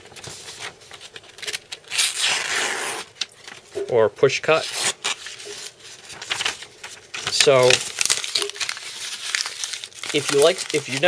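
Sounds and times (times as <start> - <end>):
paper rustling: 0.0 - 3.8, 4.5 - 11.0.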